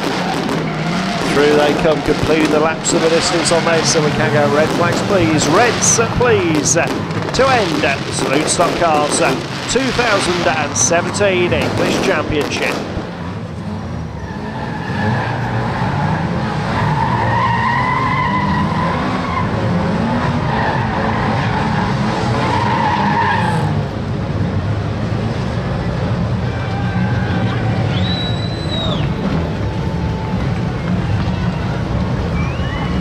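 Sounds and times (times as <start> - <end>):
car engines revving hard: 0.0 - 33.0
tyres skidding on dirt: 0.0 - 33.0.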